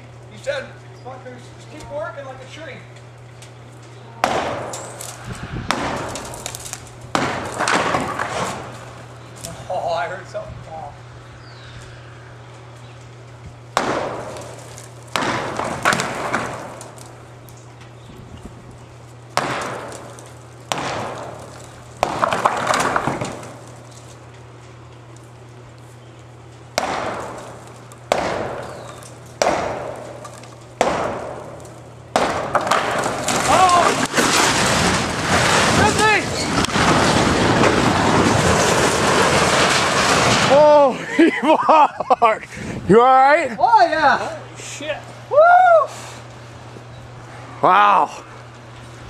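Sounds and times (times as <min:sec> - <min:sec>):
sledgehammer striking a wall: 0:04.2 - 0:05.0, 0:05.7 - 0:08.7, 0:13.8 - 0:16.8, 0:19.4 - 0:23.6, 0:26.8 - 0:34.8
silo collapsing with crashing rumble: 0:04.3 - 0:09.0, 0:32.8 - 0:41.0.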